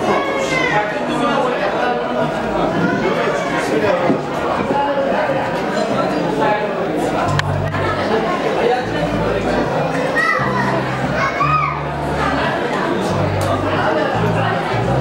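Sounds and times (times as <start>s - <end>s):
voices talking and calling out: 0.0s - 15.0s
music with held bass notes: 7.2s - 8.1s, 8.8s - 15.0s.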